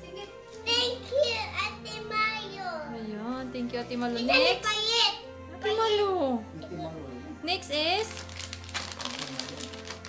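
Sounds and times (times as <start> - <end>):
candy wrappers crinkling: 8.0 - 10.0.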